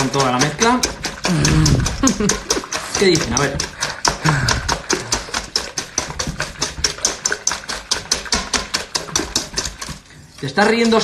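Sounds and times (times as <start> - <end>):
whisk beating eggs in metal bowl: 0.0 - 11.0.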